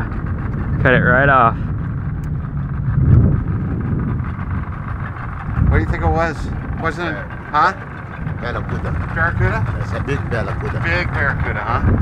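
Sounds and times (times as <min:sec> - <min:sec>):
low rumble: 0:00.0 - 0:12.0
outboard motor running: 0:00.0 - 0:12.0
wind on microphone: 0:00.0 - 0:12.0.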